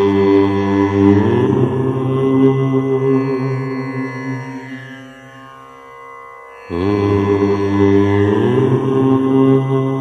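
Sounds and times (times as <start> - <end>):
deep voice chanting: 0.0 - 4.4, 6.7 - 10.0.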